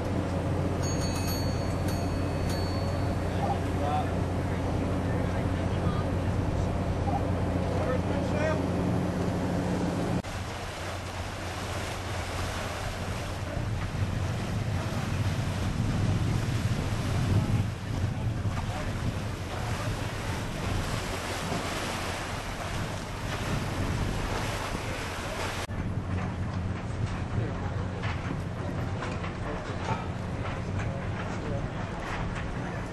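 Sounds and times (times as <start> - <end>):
rushing water: 0.0 - 25.7
wind buffeting microphone: 0.0 - 32.9.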